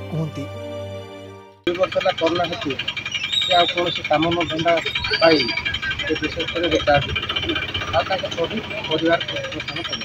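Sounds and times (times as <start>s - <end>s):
man talking: 0.0s - 0.6s, 1.7s - 2.8s, 3.5s - 10.0s.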